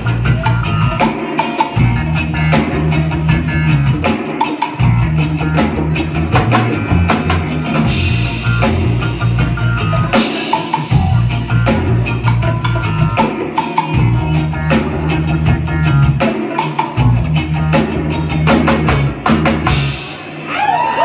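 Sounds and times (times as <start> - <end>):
bass line: 0.0 - 4.2, 4.8 - 20.3
drum kit: 0.0 - 21.0
electric guitar: 0.0 - 21.0
live band playing: 0.0 - 21.0.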